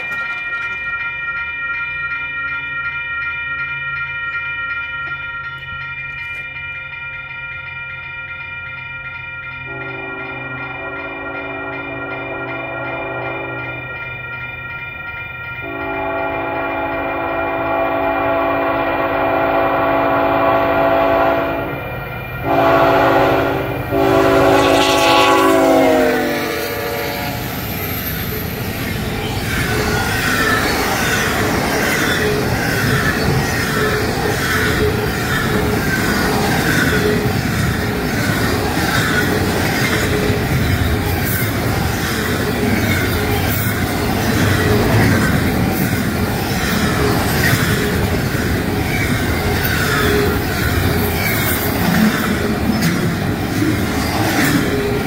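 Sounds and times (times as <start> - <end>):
wheels clicking over rail joints: 0.0 - 2.1, 27.4 - 55.0
freight train rumbling by: 5.1 - 55.0
locomotive air horn blasts: 9.7 - 13.6, 15.6 - 21.7, 22.4 - 27.5.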